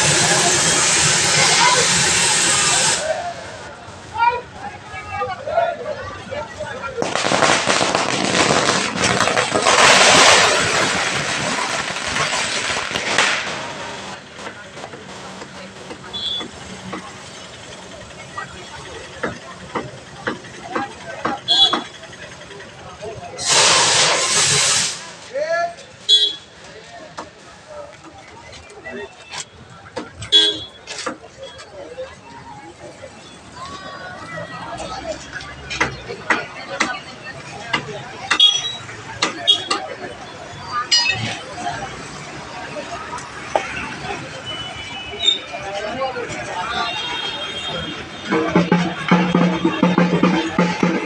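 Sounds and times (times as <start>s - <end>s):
firecrackers crackling: 0.0s - 4.1s, 6.5s - 51.0s
street crowd noise: 0.0s - 51.0s
sharp cracks: 7.0s - 15.0s
vehicle horn toot: 16.1s - 16.5s, 21.5s - 21.9s, 26.1s - 26.5s, 30.3s - 30.8s, 46.7s - 48.6s.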